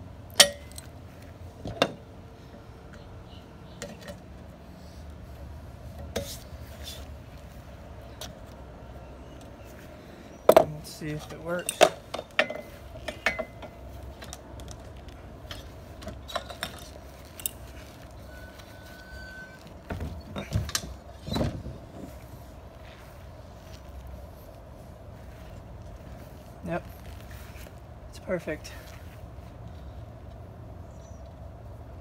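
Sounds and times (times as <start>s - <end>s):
trolling motor mount clunks: 19.1s - 21.8s.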